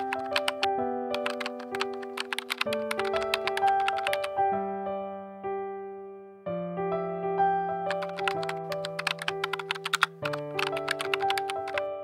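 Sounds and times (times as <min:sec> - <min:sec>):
rapid keyboard typing clicks: 0:00.0 - 0:04.4, 0:07.9 - 0:12.0
gentle piano music: 0:00.0 - 0:12.0.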